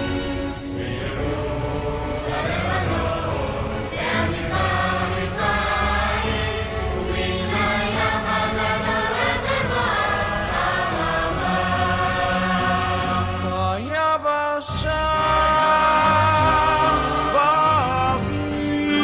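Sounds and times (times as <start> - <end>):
boys' choir singing: 0.0 - 14.0, 14.7 - 19.0.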